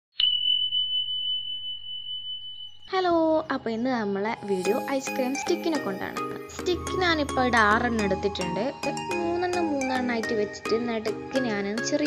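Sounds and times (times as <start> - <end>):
high-pitched chime ringing: 4.0 - 11.0.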